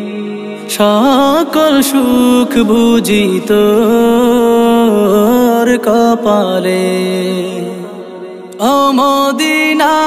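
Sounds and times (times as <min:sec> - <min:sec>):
person singing devotional song: 0:00.0 - 0:10.0.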